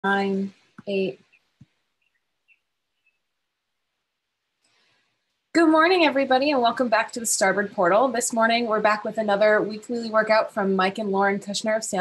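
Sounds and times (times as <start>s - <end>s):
faint high bird chirps: 1.3s - 3.3s.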